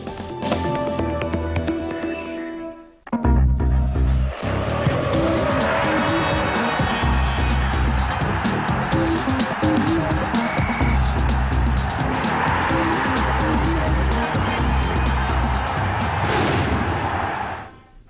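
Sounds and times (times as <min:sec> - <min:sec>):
sports theme music with driving beat: 0:00.0 - 0:02.2, 0:03.1 - 0:17.4.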